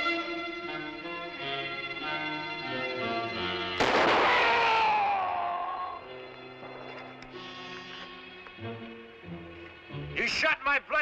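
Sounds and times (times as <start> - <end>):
dramatic orchestral music: 0.0 - 10.5
rifle shot: 3.8 - 5.2.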